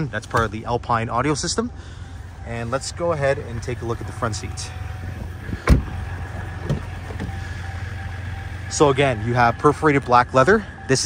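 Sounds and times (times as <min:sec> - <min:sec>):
steady low hum: 0:00.0 - 0:11.0
truck door shutting: 0:05.0 - 0:07.8.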